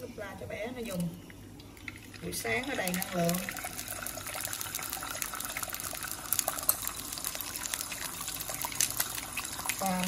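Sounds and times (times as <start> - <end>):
oil crackling and popping: 1.6 - 10.0
egg sizzling in oil: 1.7 - 10.0.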